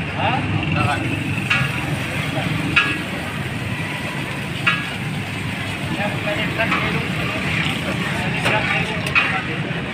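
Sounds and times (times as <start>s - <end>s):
stall noise: 0.0s - 9.9s
street traffic hum: 0.0s - 9.9s.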